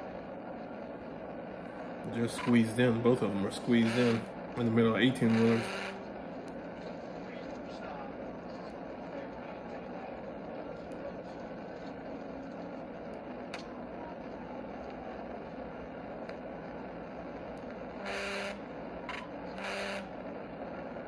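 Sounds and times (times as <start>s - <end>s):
car road and engine noise: 0.0s - 21.0s
car horn blasts: 5.3s - 6.1s, 18.0s - 18.6s, 19.5s - 20.1s.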